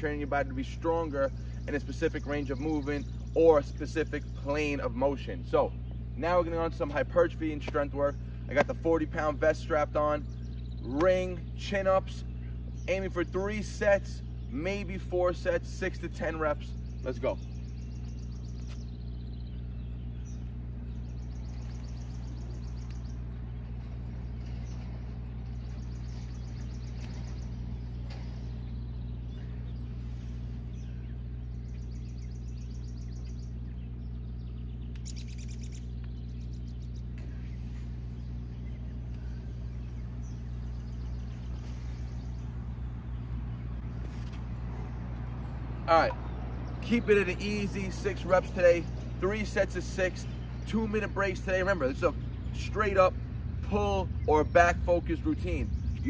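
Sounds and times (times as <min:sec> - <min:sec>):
birds chirping: 0:00.0 - 0:56.0
motor humming: 0:04.2 - 0:56.0.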